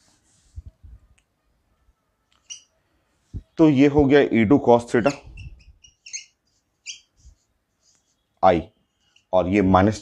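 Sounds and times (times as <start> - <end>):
marker squeaking on a whiteboard: 0.5 - 9.4.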